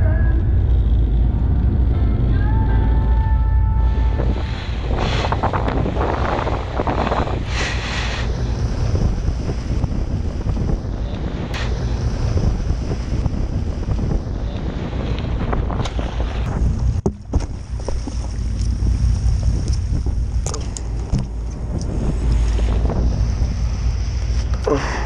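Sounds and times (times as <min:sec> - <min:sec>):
boat engine rumbling: 0:00.0 - 0:25.0
sea water splashing along hull: 0:00.0 - 0:25.0
wind buffeting microphone: 0:00.0 - 0:25.0.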